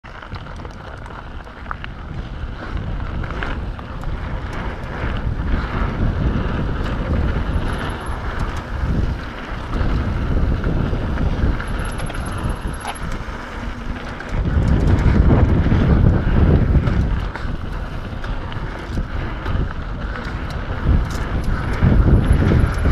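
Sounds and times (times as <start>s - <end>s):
bike clicks and rattles: 0.0s - 22.9s
tyres rolling on dirt trail: 0.0s - 22.9s
wind buffeting microphone: 0.1s - 22.9s.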